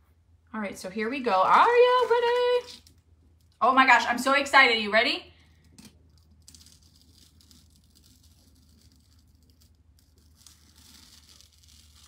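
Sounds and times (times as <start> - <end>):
plastic stencil peeling off board: 5.8 - 12.0.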